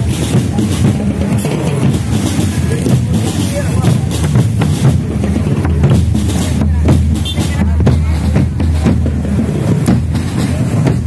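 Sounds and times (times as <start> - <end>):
marching drum band: 0.0 - 11.0.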